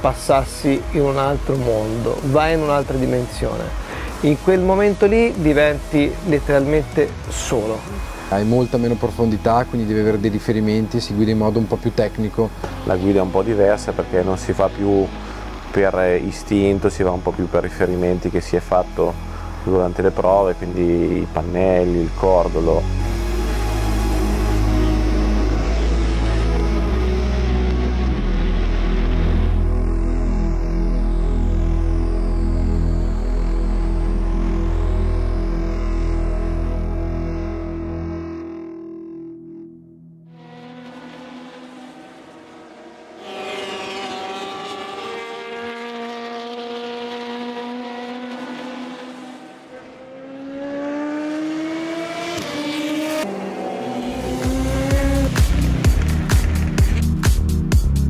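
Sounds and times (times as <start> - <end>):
race car engine accelerating: 0.0 - 38.7, 40.3 - 57.3
music with heavy bass: 0.0 - 40.4, 53.9 - 58.0.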